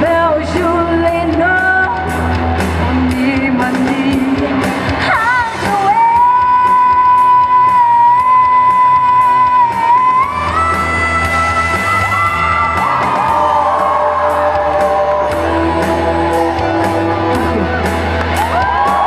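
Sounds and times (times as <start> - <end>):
woman singing rock: 0.0 - 17.8
bass: 0.0 - 19.0
rock band backing: 0.0 - 19.0.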